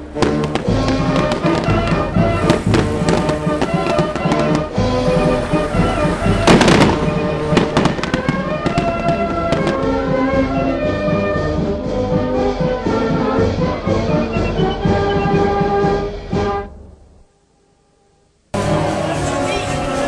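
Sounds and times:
fireworks cracking and banging: 0.0 - 10.3
music with held notes: 0.0 - 16.8.

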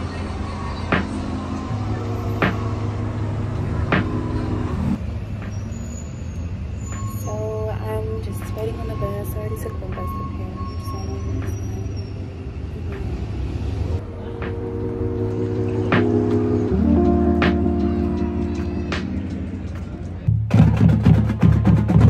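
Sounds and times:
large vehicle engine rumble: 0.0 - 22.0
street traffic: 0.0 - 22.0.

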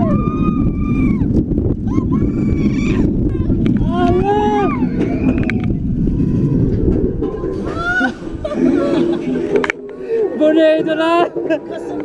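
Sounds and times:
riders whooping and shouting: 0.0 - 5.8, 7.6 - 9.0
roller coaster rumbling on track: 0.0 - 12.0.

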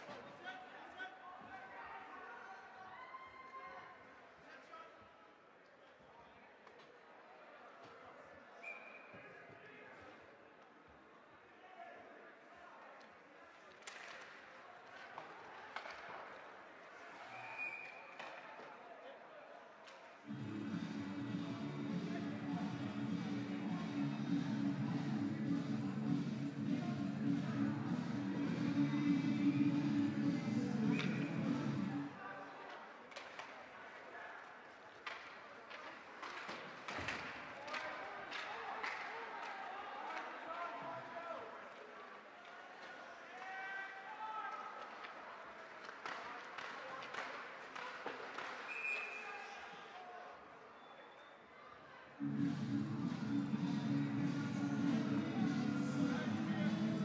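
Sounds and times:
voices of players and spectators: 0.0 - 57.0
hockey sticks and puck clacking: 13.7 - 16.4, 33.1 - 33.6, 34.9 - 40.3, 44.5 - 49.2
music over loudspeakers: 20.3 - 32.1, 52.2 - 57.0.

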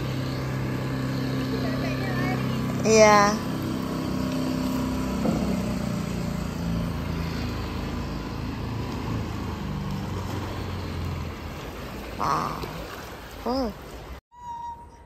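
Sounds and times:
small outboard motor running: 0.0 - 14.2.

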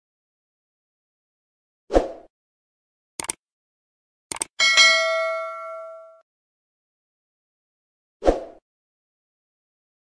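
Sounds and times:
bell-like notification ding: 4.6 - 6.2.

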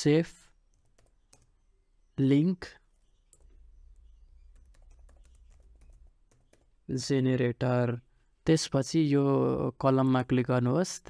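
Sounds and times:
keyboard typing: 0.7 - 1.6, 3.0 - 6.8.

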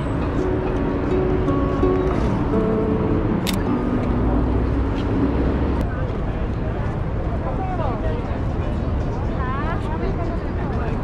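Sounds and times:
traffic rumble: 0.0 - 11.0
sharp click: 3.4 - 3.7.

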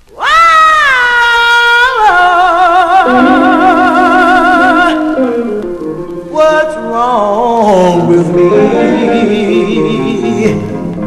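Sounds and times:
woman singing high held note: 0.3 - 5.5.

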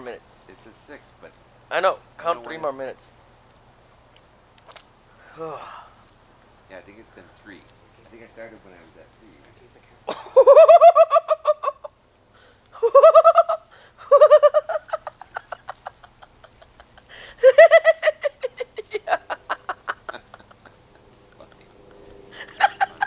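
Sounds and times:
woman laughing: 10.1 - 12.0, 12.8 - 21.6, 22.4 - 23.0.

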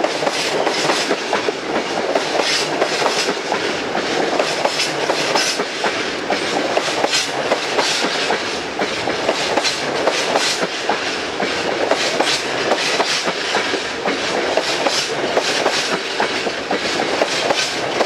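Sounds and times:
train wheels clattering over rail joints: 0.0 - 18.0.

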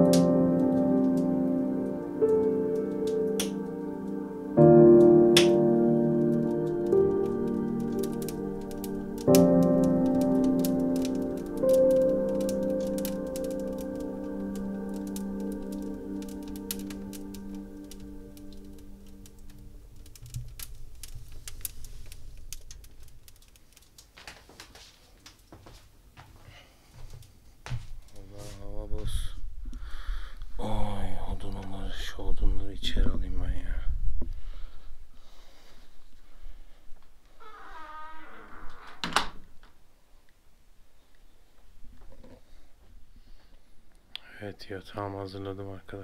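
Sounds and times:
soft sustained music chords: 0.0 - 21.1
wood fire crackling: 0.0 - 40.4.

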